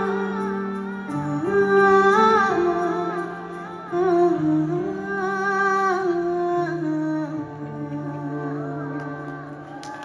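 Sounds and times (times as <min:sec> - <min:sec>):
sustained instrumental accompaniment: 0:00.0 - 0:10.0.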